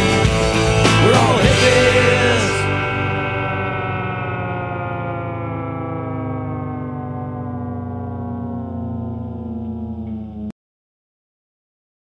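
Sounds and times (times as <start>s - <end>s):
distorted rock chord: 0.0s - 10.5s
steady low drone: 0.0s - 10.5s.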